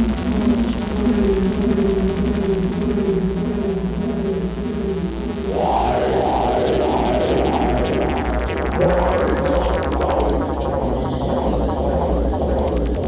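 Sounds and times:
mid-range synth notes: 0.0 - 13.0
pulsing low synth bass: 0.0 - 13.0.

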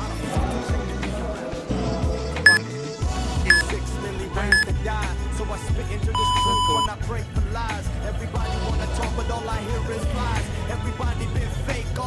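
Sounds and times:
interval timer high beeps: 6.2 - 6.9.

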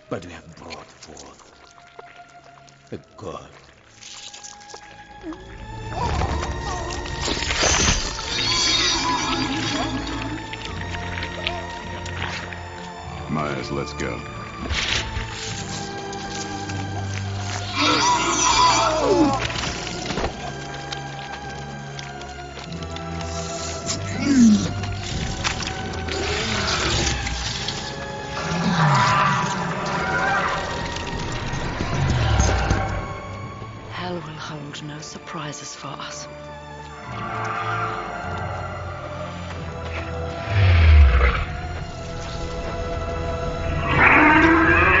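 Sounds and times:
dramatic score music: 0.0 - 45.0
monster roaring and growling: 28.2 - 31.1, 40.4 - 41.8, 43.6 - 45.0.

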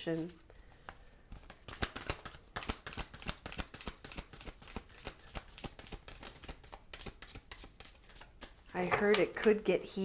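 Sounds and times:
cards shuffled by hand: 0.2 - 8.6.

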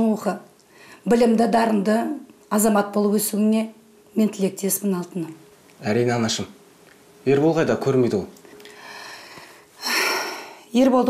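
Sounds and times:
woman's intake of breath: 0.7 - 1.1, 8.6 - 10.6
man speaking: 5.8 - 6.6, 7.2 - 8.4.

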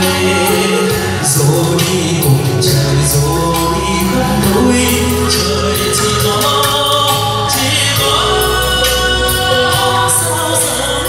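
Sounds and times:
backing track with bass and drums: 0.0 - 11.0
man singing into a microphone: 0.0 - 11.0.

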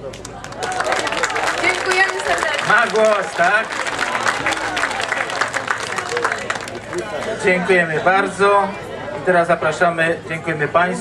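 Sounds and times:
audience clapping: 0.0 - 7.5
voices: 0.4 - 10.0.

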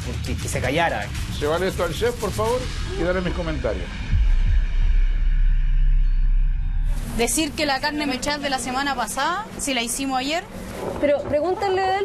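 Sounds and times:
deep dramatic drone: 0.0 - 12.0.

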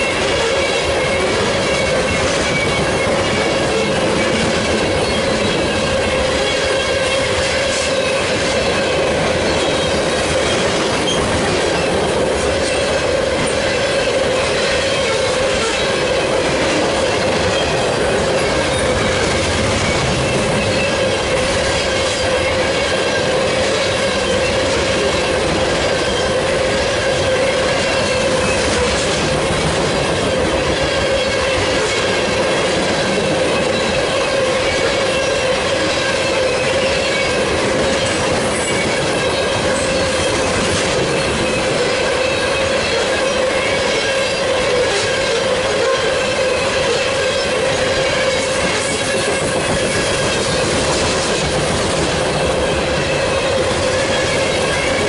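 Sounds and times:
train wheels rumbling on rail: 0.0 - 55.0.

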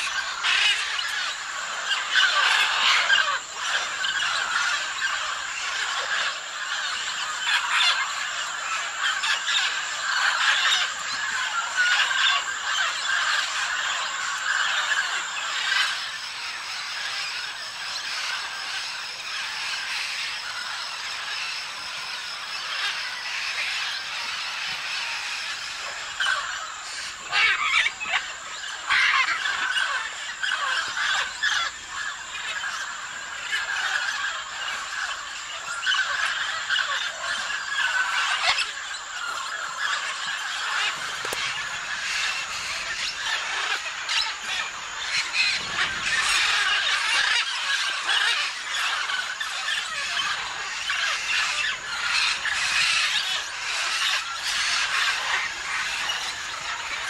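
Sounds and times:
parrots calling and chattering: 0.0 - 57.0.

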